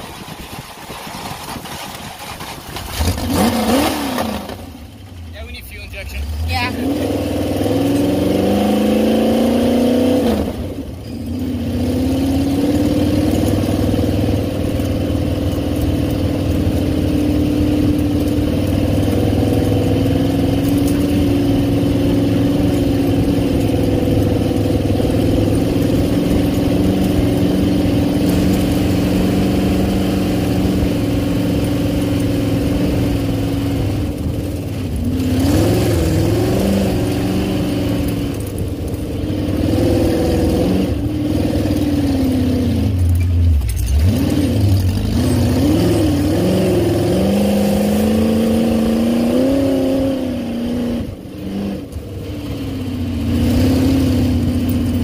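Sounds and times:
engine revving under load: 0:01.3 - 0:55.0.

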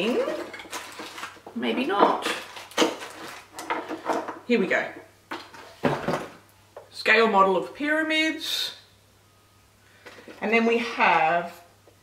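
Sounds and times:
rustling: 0:00.0 - 0:01.6, 0:02.2 - 0:04.3.

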